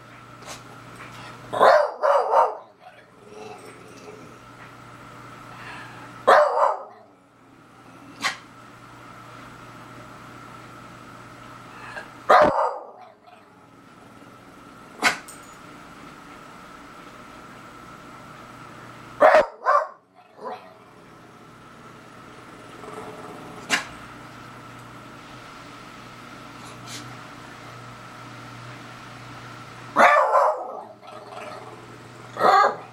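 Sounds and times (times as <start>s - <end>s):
dog barking: 1.6s - 2.7s, 6.3s - 7.0s, 12.3s - 13.2s, 19.2s - 20.7s, 30.0s - 30.9s, 32.4s - 32.9s.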